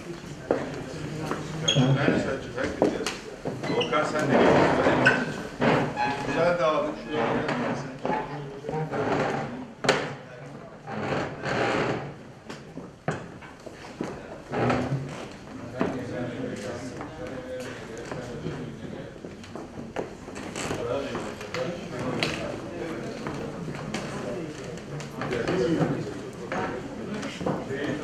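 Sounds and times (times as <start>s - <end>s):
people chattering: 0.0s - 11.2s, 12.2s - 28.0s.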